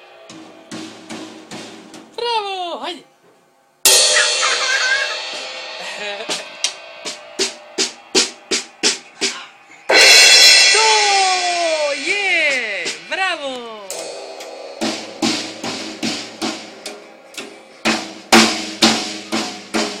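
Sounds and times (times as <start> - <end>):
cymbal crash: 0.0 - 2.0, 3.8 - 20.0
sharp drum strikes: 0.0 - 2.2, 3.9 - 20.0.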